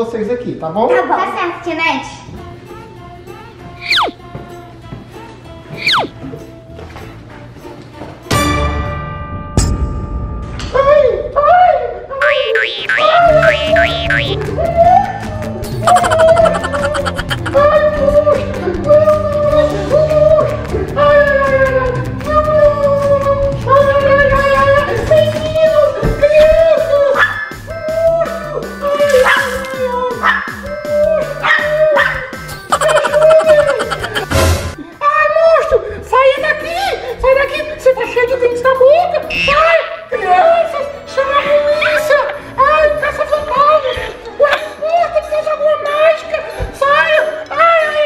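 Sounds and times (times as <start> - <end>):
background music with steady beat: 2.2 - 8.8, 13.0 - 23.8, 30.0 - 34.9
cartoon boing spring sounds: 12.2 - 14.4, 15.8 - 17.6, 32.7 - 34.5, 39.3 - 39.7.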